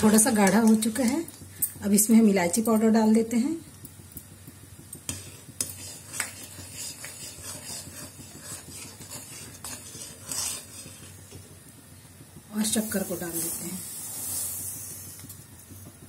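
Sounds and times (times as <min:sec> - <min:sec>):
spatula scraping metal pan: 0:05.1 - 0:11.4.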